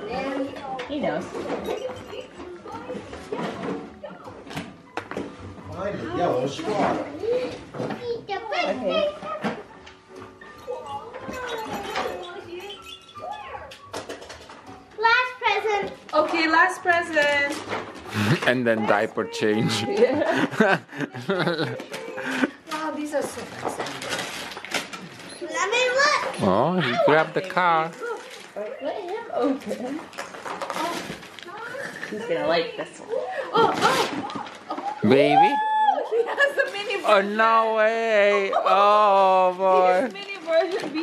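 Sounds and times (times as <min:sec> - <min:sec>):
wrapping paper crinkling and tearing: 0:22.8 - 0:25.4, 0:27.2 - 0:32.3, 0:39.2 - 0:41.0.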